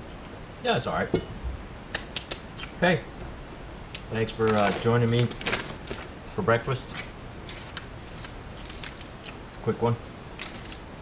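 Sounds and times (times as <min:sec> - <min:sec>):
low room noise: 0:00.0 - 0:11.0
plastic wrapper crinkling: 0:04.2 - 0:06.1, 0:06.8 - 0:09.4, 0:10.4 - 0:10.9.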